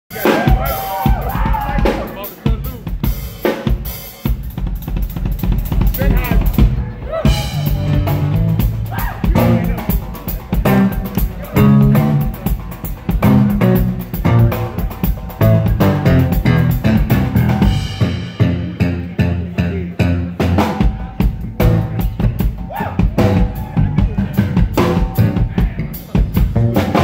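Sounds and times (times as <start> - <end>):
drum kit groove: 0.1 - 27.0
electric bass guitar notes: 5.1 - 27.0.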